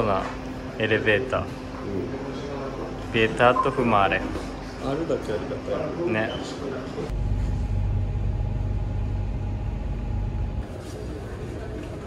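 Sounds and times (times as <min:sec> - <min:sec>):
elevator running with low rumble: 0:00.0 - 0:12.0.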